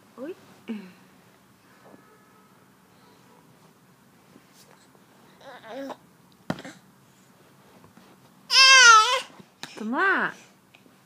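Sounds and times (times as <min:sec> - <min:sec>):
baby squealing: 0:08.5 - 0:09.3.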